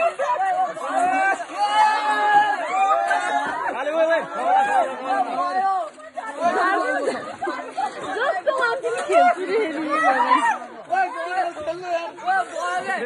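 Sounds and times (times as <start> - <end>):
group of voices talking over one another: 0.0 - 13.0.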